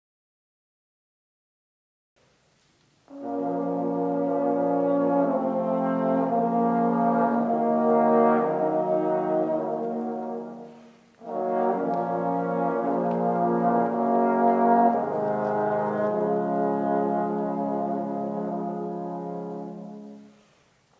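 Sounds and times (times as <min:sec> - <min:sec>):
trombone quartet playing chords: 0:03.1 - 0:20.4.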